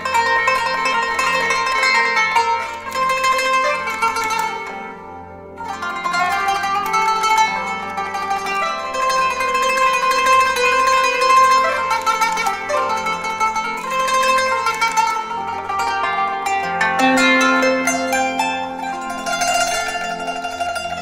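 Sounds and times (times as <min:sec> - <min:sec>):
qanun plucked notes: 0:00.0 - 0:21.0.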